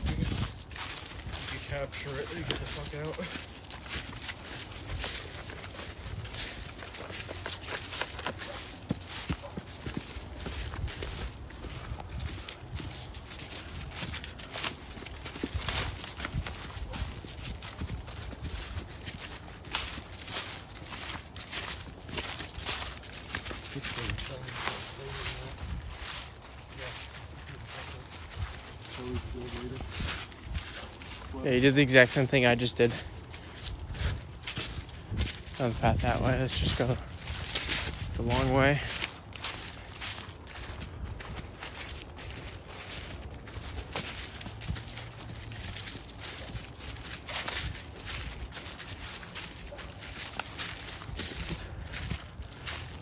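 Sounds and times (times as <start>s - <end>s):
footsteps on dry leaves: 0.0s - 53.0s.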